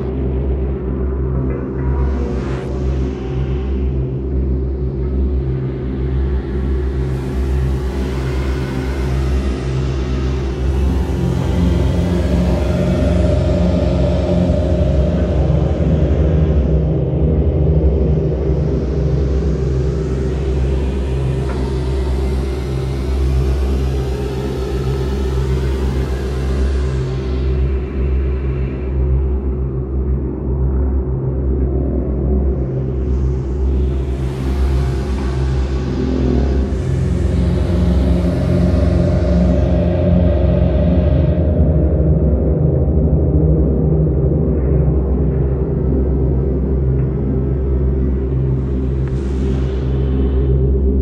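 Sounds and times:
ambient electronic drone music: 0.0s - 51.0s.

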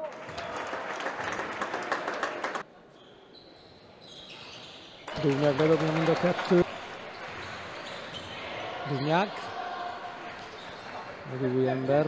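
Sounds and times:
basketball game in sports hall: 0.0s - 12.0s.

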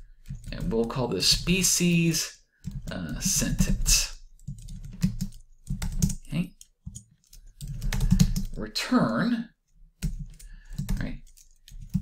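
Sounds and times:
computer keyboard typing: 0.0s - 8.6s, 10.0s - 12.0s.

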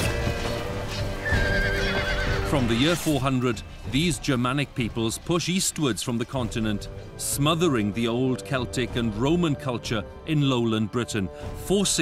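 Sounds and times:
background music: 0.0s - 12.0s
horse whinnying: 1.2s - 3.2s.

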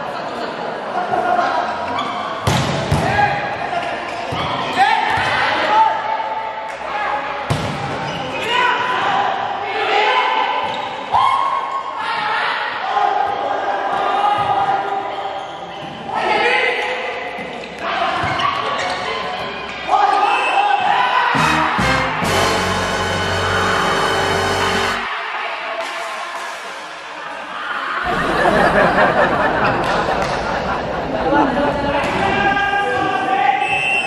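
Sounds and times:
people shouting: 19.9s - 25.2s.

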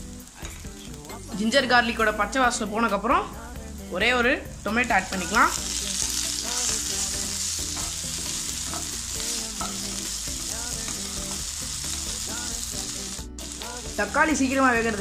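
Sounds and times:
vegetables sizzling in hot oil: 0.0s - 15.0s.

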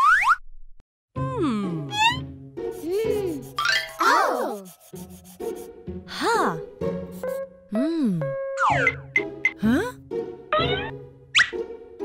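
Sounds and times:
light children's music: 1.2s - 12.0s
crayon scribbling on paper: 2.7s - 5.8s.

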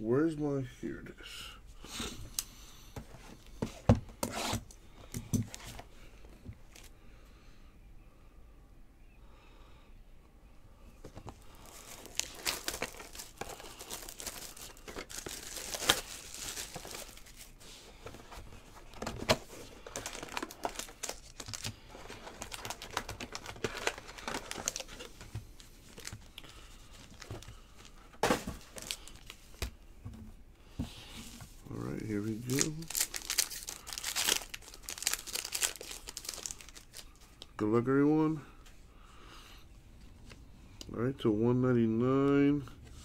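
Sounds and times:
plastic wrap crinkling: 11.3s - 29.7s, 32.2s - 37.5s.

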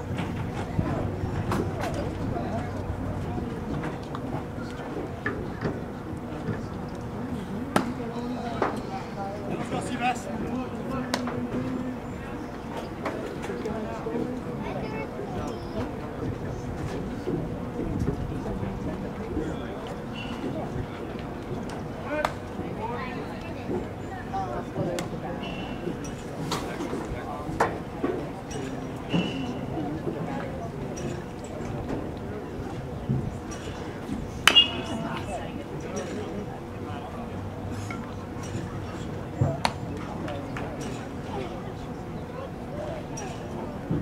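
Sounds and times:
background voices: 0.0s - 20.8s
crowd chatter: 0.0s - 44.0s.

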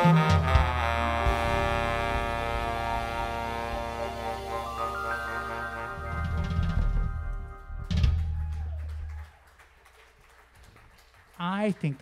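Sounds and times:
jazz band playing: 0.0s - 8.5s
baritone saxophone and bass notes: 0.0s - 8.6s.

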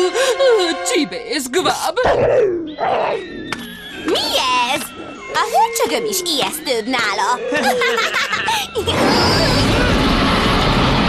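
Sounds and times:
background music: 0.0s - 9.6s.

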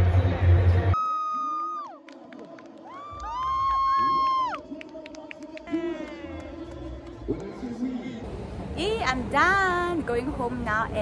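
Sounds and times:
people cheering and whooping: 1.0s - 7.9s.

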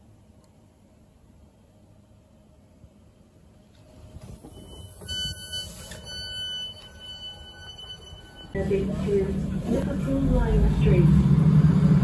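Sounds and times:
low rumble of train: 0.0s - 12.0s
high electronic door warning beep: 4.3s - 8.7s.

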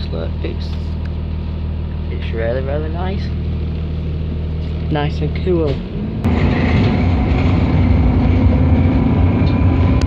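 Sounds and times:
bus engine droning: 0.0s - 10.0s
road rumble: 0.0s - 10.0s.

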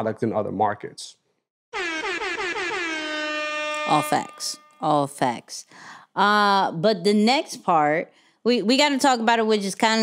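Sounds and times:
loud horn-like tone: 1.7s - 5.1s.

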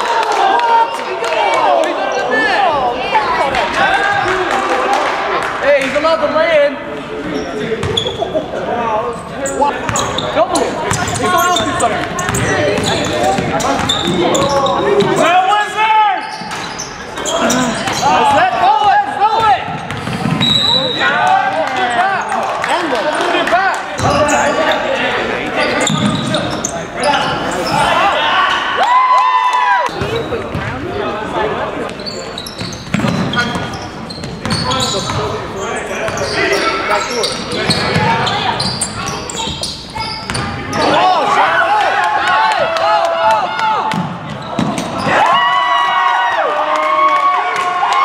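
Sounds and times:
indistinct echoing voices: 0.0s - 28.8s.

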